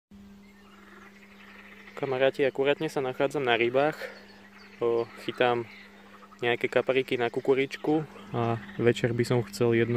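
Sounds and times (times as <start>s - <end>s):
steady low hum: 0.2s - 9.9s
faint animal calls: 0.3s - 9.9s.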